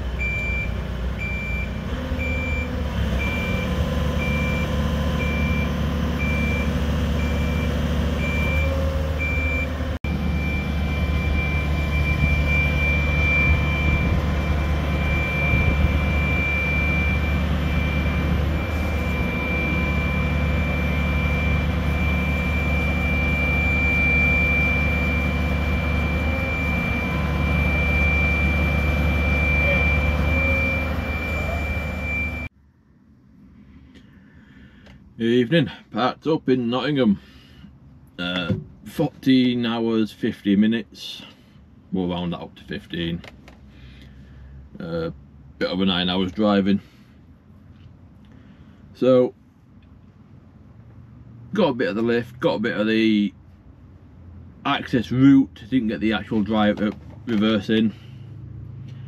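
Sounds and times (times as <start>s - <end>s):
diesel engine running: 0.0s - 35.0s, 46.8s - 59.0s
high electronic warning beeper: 1.3s - 32.5s.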